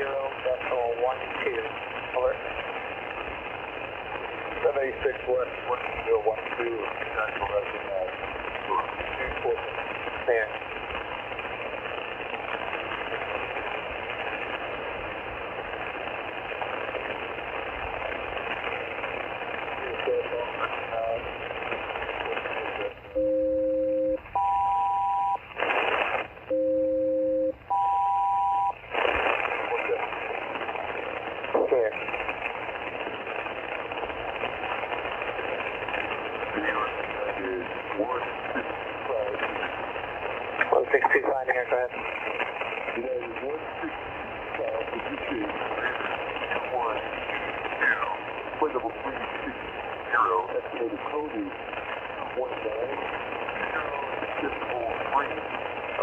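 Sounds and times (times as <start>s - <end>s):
radio static and hiss: 0.0s - 56.0s.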